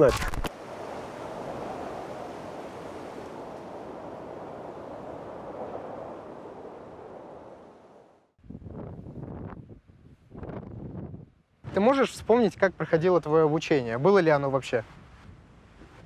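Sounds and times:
sea surf: 0:00.0 - 0:08.4
rushing wind: 0:00.0 - 0:12.8, 0:14.8 - 0:16.0
wind gusts buffeting microphone: 0:00.0 - 0:12.8.

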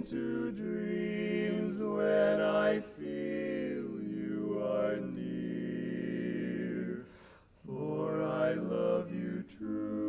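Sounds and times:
men singing in close harmony: 0:00.0 - 0:10.0.

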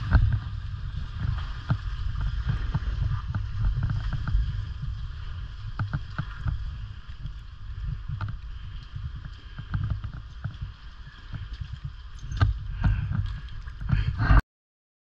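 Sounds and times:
low rumble: 0:00.0 - 0:14.4
water sloshing against rocks: 0:00.0 - 0:14.4.

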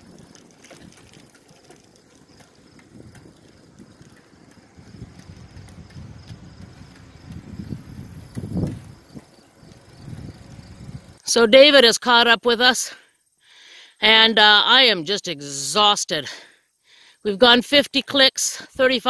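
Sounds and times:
wind buffeting microphone: 0:00.0 - 0:11.2.

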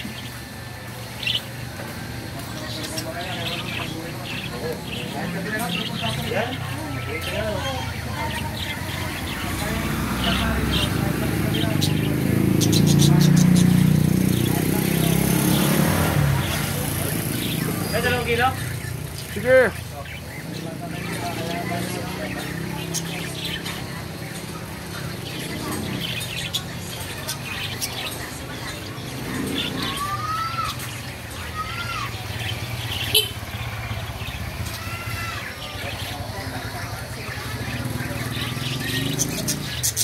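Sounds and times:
budgerigars chirping: 0:00.0 - 0:01.6, 0:02.4 - 0:30.2, 0:32.2 - 0:40.0
vehicle engine running: 0:00.4 - 0:19.5.

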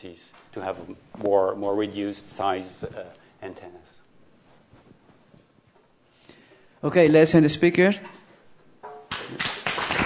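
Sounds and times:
audience applause: 0:09.1 - 0:10.0.

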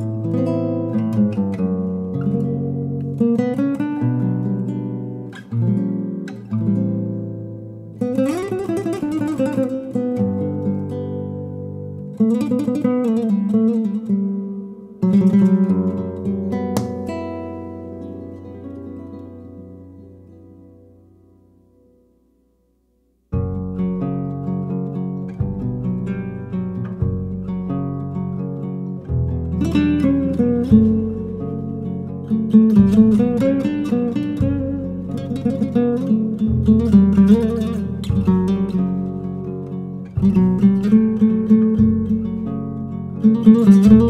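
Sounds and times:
classical guitar playing: 0:00.0 - 0:44.0.

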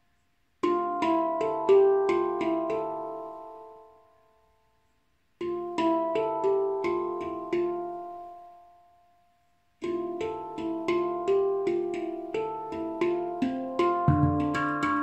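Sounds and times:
handpan notes ringing: 0:00.6 - 0:04.0, 0:05.4 - 0:08.8, 0:09.8 - 0:15.0.

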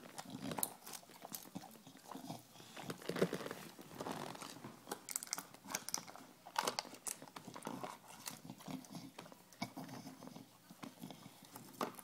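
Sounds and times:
dog chewing plastic bottle: 0:00.0 - 0:12.0.

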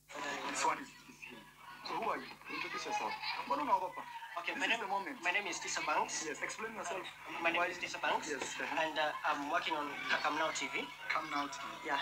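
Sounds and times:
indistinct speech from video: 0:00.1 - 0:12.0.

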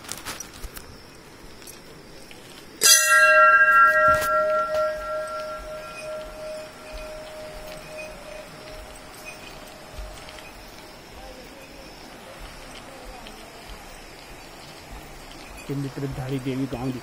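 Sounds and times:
temple bell ringing: 0:02.8 - 0:10.6.

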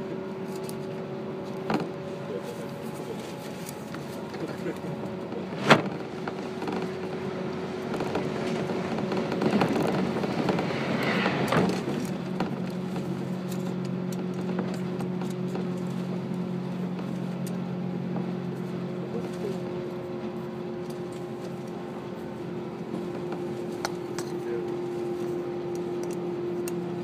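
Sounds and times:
electric train rolling rumble: 0:00.0 - 0:27.0.

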